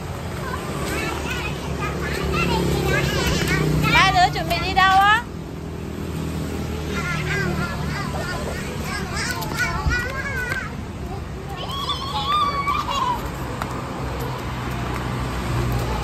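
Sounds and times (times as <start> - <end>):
motorbikes passing: 0.0 - 16.0
street traffic hum: 0.0 - 16.0
children squealing and laughing: 0.3 - 4.2, 6.8 - 14.8.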